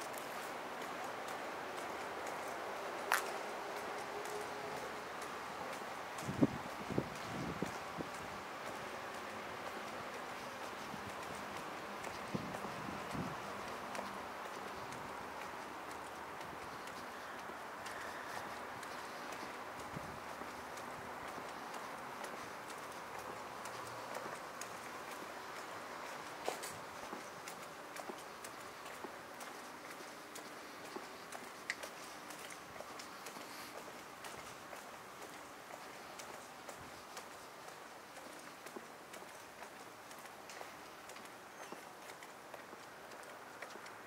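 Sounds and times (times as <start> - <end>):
distant city traffic hum: 0.0 - 44.0
footsteps on pavement: 0.0 - 44.0.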